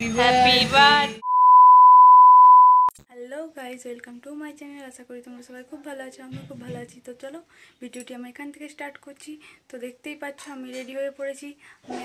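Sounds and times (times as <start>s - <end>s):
electronic beep tone: 1.2s - 2.9s.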